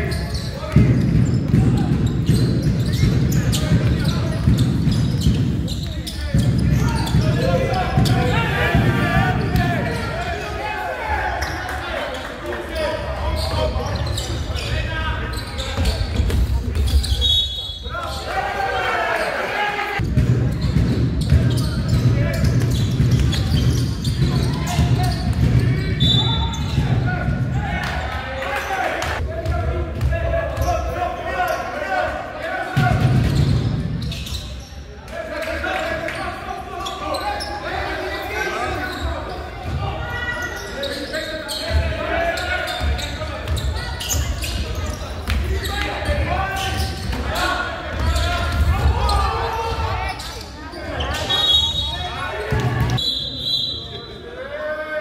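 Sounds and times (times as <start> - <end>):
echoing voices shouting: 6.2 - 15.3, 17.6 - 20.0.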